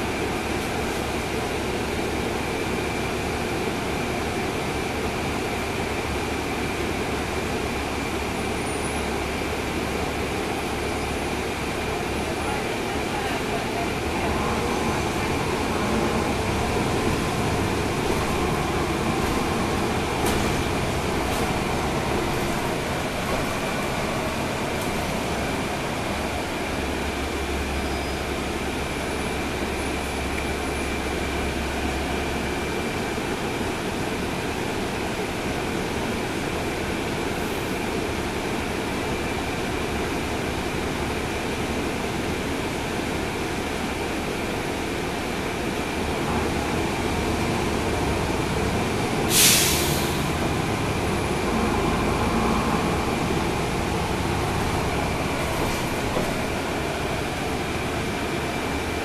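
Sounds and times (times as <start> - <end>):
bus diesel engine running: 0.0 - 59.0
road noise: 0.0 - 59.0
brief sharp hiss: 49.3 - 50.2.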